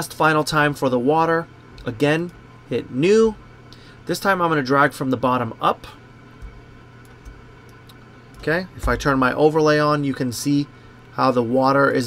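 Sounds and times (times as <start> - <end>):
low electrical hum: 0.0 - 12.0
soft desk bumps: 8.4 - 9.2.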